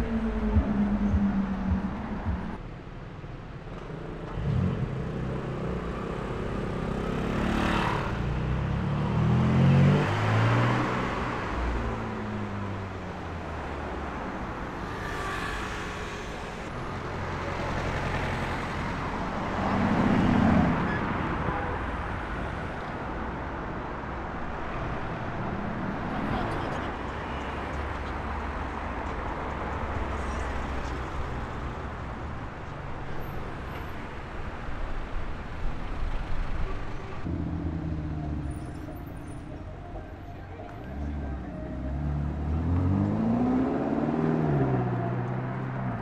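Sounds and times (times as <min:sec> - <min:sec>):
sports car engines accelerating: 0:00.0 - 0:02.6, 0:03.7 - 0:16.7, 0:37.2 - 0:46.0
street noise: 0:00.0 - 0:46.0.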